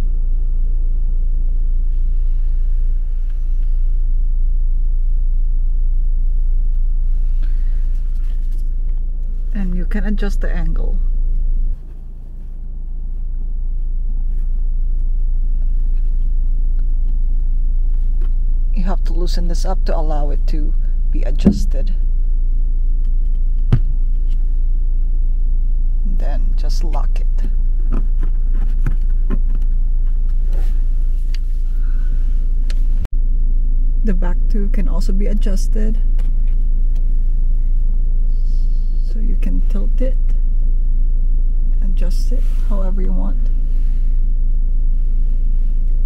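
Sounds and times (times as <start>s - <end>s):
car cabin rumble: 0.0s - 33.3s.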